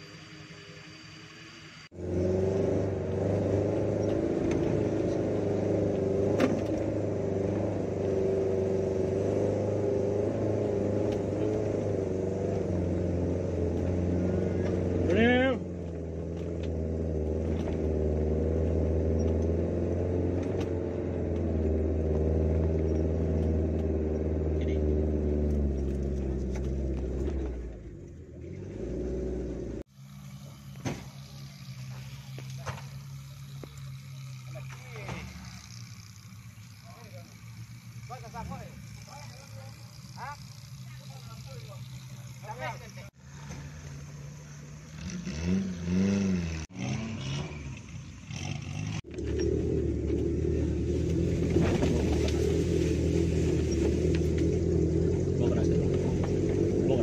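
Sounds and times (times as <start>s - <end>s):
car engine pulling under load: 0.0s - 57.0s.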